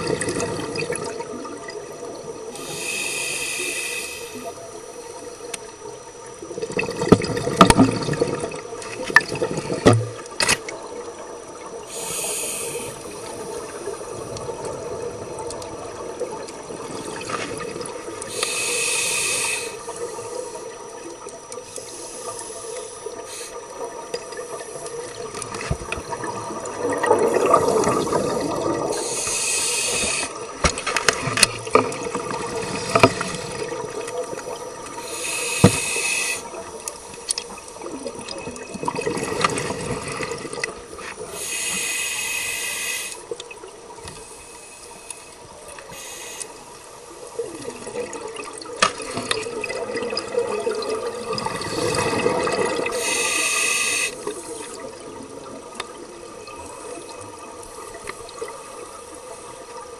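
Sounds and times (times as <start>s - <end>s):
gurgling exhaled bubbles: 0.0s - 2.6s, 6.2s - 12.0s, 12.8s - 18.4s, 23.0s - 29.3s, 29.9s - 35.8s, 37.4s - 41.3s, 47.1s - 53.4s
regulator hissing inhalations: 2.5s - 5.2s, 11.8s - 13.7s, 18.2s - 20.8s, 21.6s - 23.8s, 27.4s - 30.5s, 34.9s - 37.2s, 41.1s - 43.4s, 44.1s - 47.4s, 51.7s - 54.8s.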